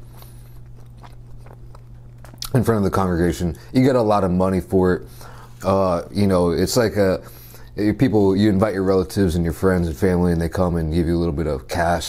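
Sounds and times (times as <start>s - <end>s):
chewing food: 0.0s - 3.2s
steady low hum: 0.0s - 12.0s
soft mouth clicks: 0.1s - 2.6s.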